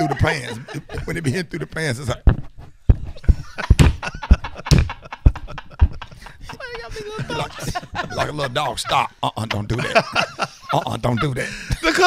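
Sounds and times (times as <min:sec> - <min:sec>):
man chuckling: 0:00.0 - 0:01.2, 0:03.2 - 0:12.0
man making thumping mouth sounds: 0:02.1 - 0:06.1.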